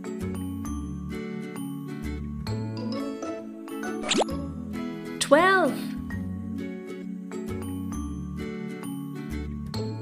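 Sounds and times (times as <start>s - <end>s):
light children's music: 0.0s - 10.0s
sliding plop sound effect: 4.0s - 4.4s.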